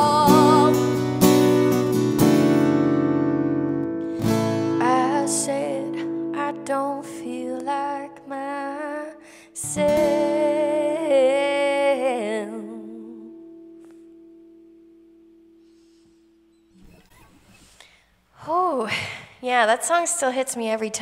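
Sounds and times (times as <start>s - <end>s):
woman singing: 0.0s - 1.0s, 4.7s - 13.6s
acoustic guitar strummed chord: 0.0s - 6.4s.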